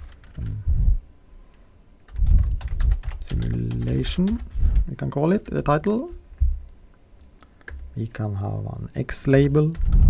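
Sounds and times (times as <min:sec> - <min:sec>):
keyboard keystrokes and clicks: 0:02.1 - 0:06.0
low thump: 0:06.4 - 0:06.6.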